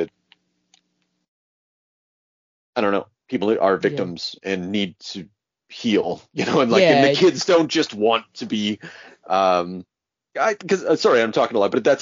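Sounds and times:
spoken word: 0:02.8 - 0:05.2, 0:05.8 - 0:09.8, 0:10.4 - 0:12.0.

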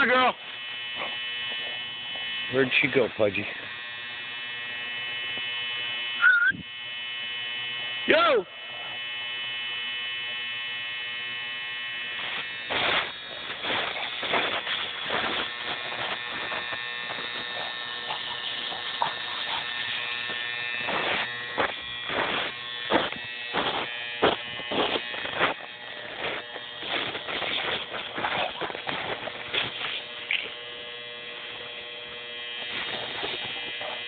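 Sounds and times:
high-pitched electrical whine: 0:00.0 - 0:34.0
footsteps crunching in snow: 0:12.7 - 0:30.6, 0:32.6 - 0:34.0.

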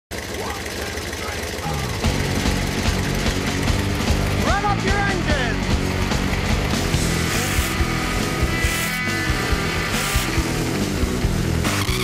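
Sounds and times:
car engine running: 0:00.1 - 0:12.0
music: 0:01.6 - 0:12.0.

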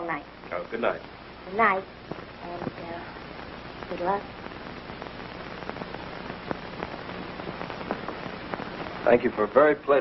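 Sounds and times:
film soundtrack hiss and crackle: 0:00.0 - 0:10.0.

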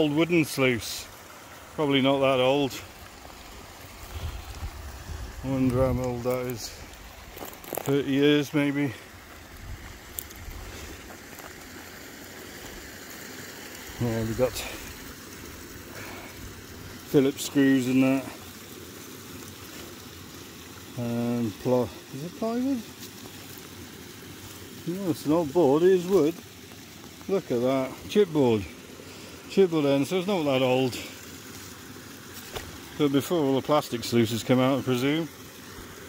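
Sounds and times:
outdoor background noise: 0:00.0 - 0:36.0
stream water rushing: 0:00.0 - 0:36.0.

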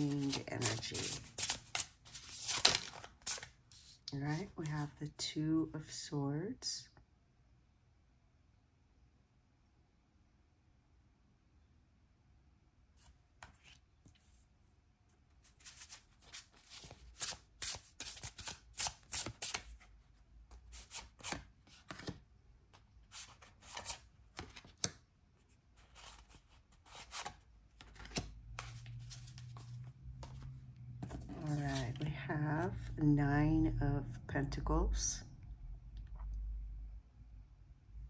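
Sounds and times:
cards being shuffled: 0:00.0 - 0:04.8, 0:15.4 - 0:19.9, 0:20.5 - 0:25.0, 0:25.8 - 0:32.9
cards laid on wooden table: 0:27.0 - 0:32.9.

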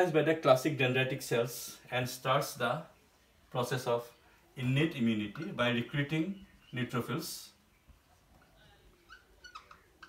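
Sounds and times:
marker squeaking on whiteboard: 0:08.2 - 0:10.0.

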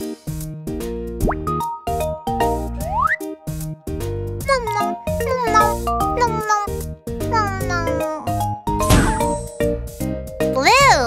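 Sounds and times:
cartoon music: 0:01.2 - 0:03.4, 0:04.4 - 0:09.8
cartoon cat meowing: 0:04.5 - 0:08.4.

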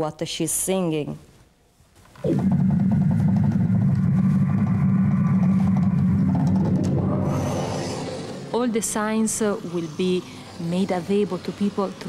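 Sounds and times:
low pulsing synthesizer drone: 0:02.2 - 0:12.0.

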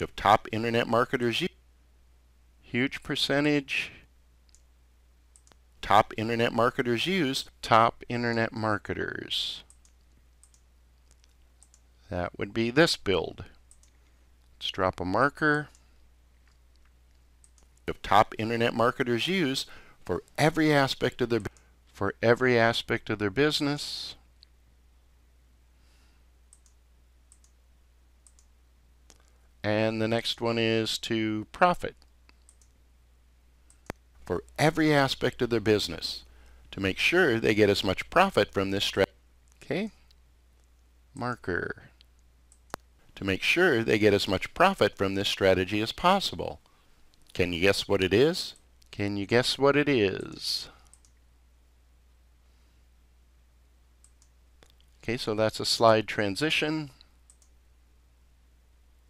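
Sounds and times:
computer mouse clicks: 0:04.5 - 0:04.7, 0:05.3 - 0:05.6, 0:09.7 - 0:11.9, 0:13.7 - 0:14.0, 0:16.5 - 0:17.8, 0:26.5 - 0:27.6, 0:28.2 - 0:28.5, 0:32.0 - 0:32.8, 0:33.7 - 0:34.1, 0:42.0 - 0:42.9, 0:50.8 - 0:51.2, 0:54.0 - 0:54.9, 0:57.3 - 0:57.6.

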